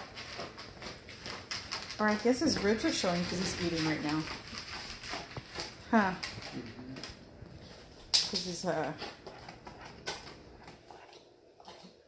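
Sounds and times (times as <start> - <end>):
dog chewing dry kibble: 0.0 - 12.0.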